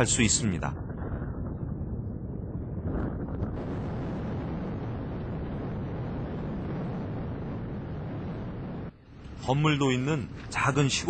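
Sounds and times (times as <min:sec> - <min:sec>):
wind buffeting microphone: 0:00.0 - 0:09.5.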